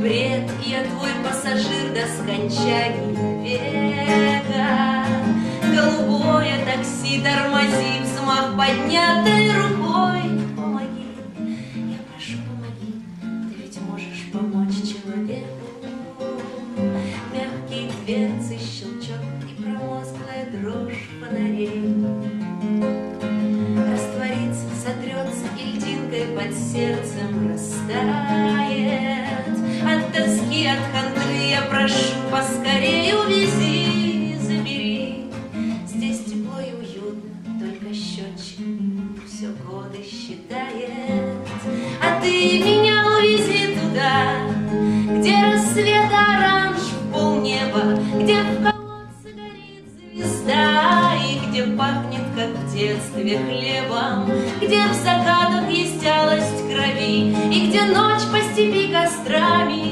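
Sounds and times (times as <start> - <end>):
nylon-string guitar: 0.0 - 59.9
woman singing: 0.0 - 59.9.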